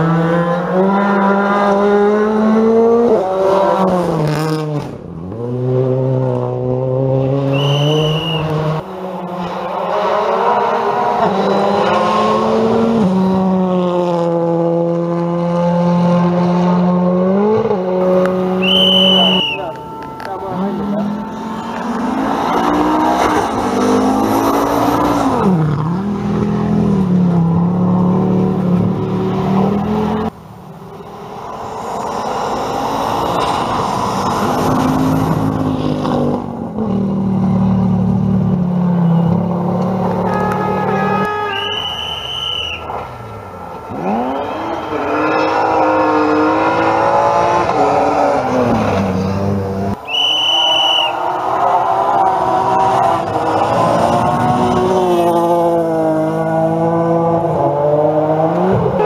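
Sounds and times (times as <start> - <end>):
rally car engines revving: 0.0 - 59.0
shrill steady tone: 18.6 - 22.3, 41.0 - 42.9.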